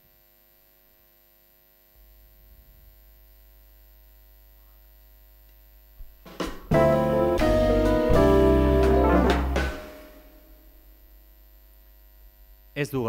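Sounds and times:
faint mains hum: 0.0s - 13.0s.

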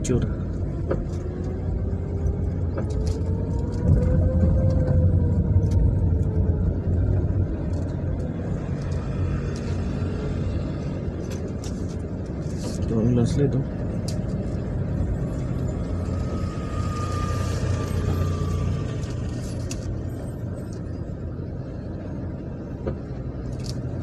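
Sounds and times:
car engine rumble: 0.0s - 24.0s.

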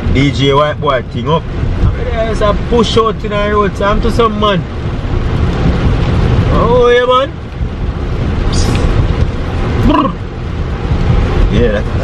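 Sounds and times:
car cabin road rumble: 0.0s - 12.0s
short hiss: 8.5s - 9.0s.

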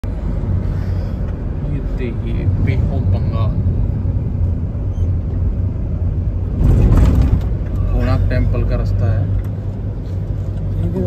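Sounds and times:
vehicle road and engine rumble: 0.0s - 11.0s.

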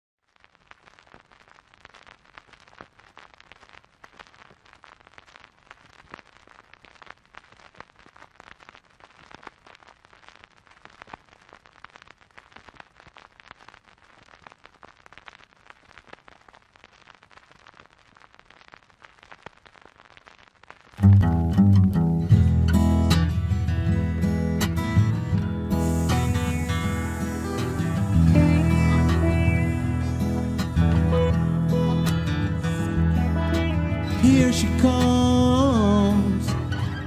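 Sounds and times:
crackles and clicks: 0.2s - 37.0s
record surface hiss: 0.2s - 37.0s.

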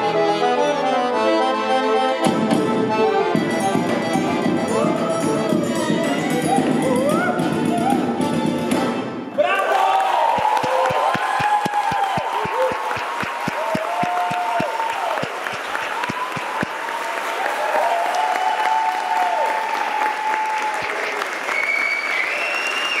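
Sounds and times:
crowd shouting: 9.4s - 20.6s
audience applauding: 9.5s - 23.0s.

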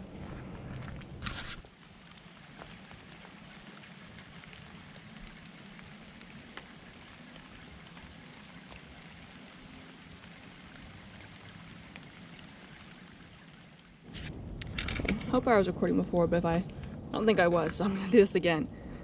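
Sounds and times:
woodland ambience hiss: 1.6s - 19.0s.

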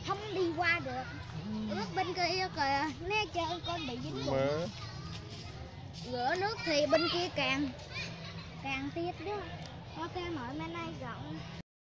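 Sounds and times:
child speaking: 0.0s - 5.1s, 6.1s - 11.5s.

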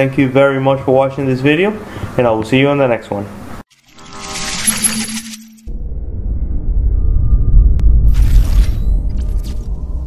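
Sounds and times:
glittering chiming shimmer: 3.7s - 5.7s
deep rumble: 5.7s - 10.0s.

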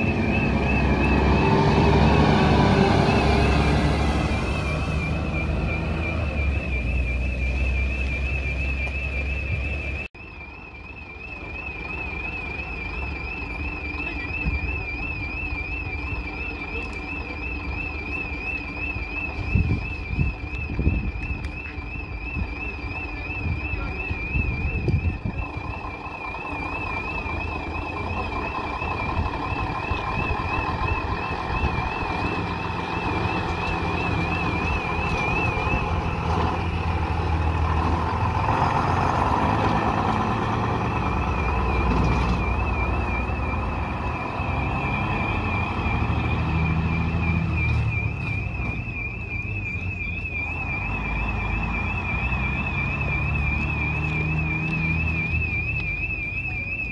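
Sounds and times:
bus engine driving past: 0.0s - 14.6s, 24.1s - 56.9s
high warbling alarm tone: 0.0s - 56.9s.

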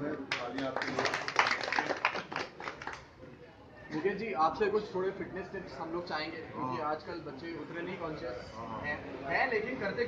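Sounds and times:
small group applauding: 0.2s - 3.1s.

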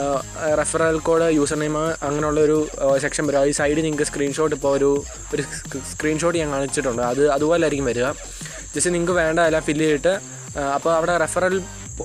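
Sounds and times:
man talking: 0.0s - 12.0s
steady high-pitched whine: 0.0s - 12.0s.

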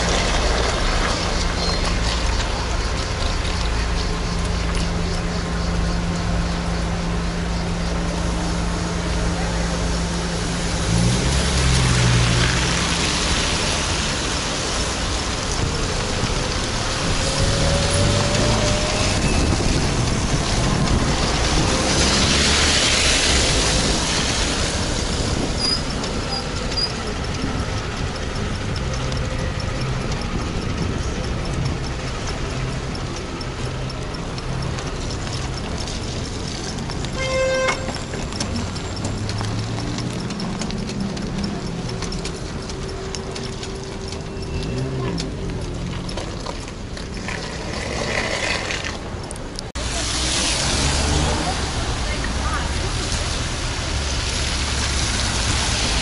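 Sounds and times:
tyres hissing on wet road: 0.0s - 56.0s.

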